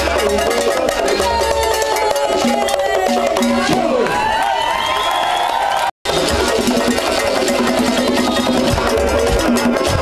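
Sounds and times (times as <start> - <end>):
conga drums played by hand: 0.0 - 3.9, 6.0 - 10.0
percussion: 0.0 - 10.0.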